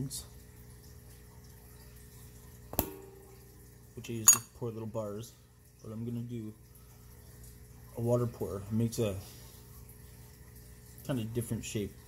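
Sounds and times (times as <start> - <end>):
faint steady hum: 0.0 - 12.0
sharp knock with ring: 2.8 - 3.4.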